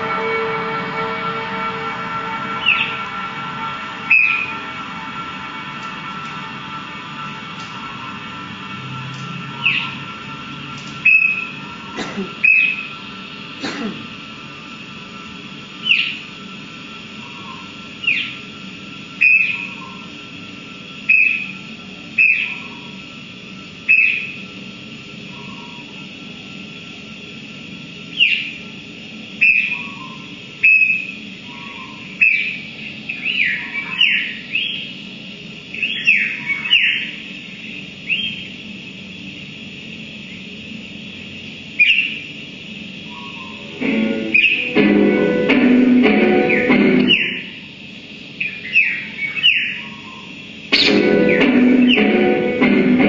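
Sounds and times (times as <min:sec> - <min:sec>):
steady low hum: 0:00.0 - 0:53.0
electronic bird-like chirps: 0:03.8 - 0:04.6, 0:09.1 - 0:27.0, 0:28.0 - 0:28.8, 0:29.4 - 0:35.1, 0:35.7 - 0:38.6, 0:41.8 - 0:42.4, 0:43.0 - 0:52.4.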